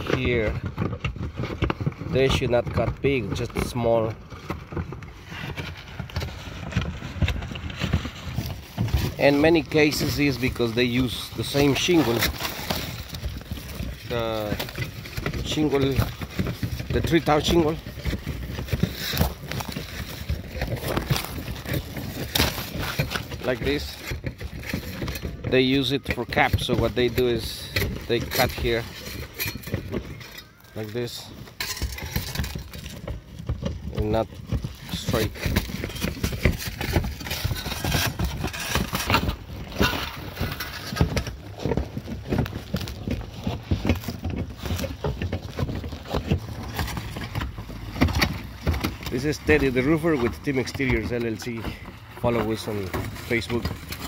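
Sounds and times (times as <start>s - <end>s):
footsteps on shingle roof: 0.0s - 54.0s.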